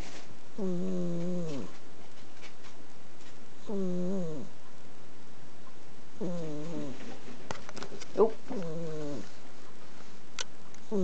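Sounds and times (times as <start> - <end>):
cat snoring: 0.6 - 1.8, 3.6 - 4.6, 6.2 - 7.0, 8.5 - 9.4.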